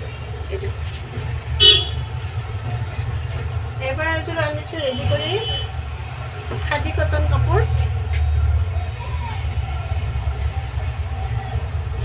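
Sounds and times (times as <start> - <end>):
low steady rumble: 0.1 - 12.0.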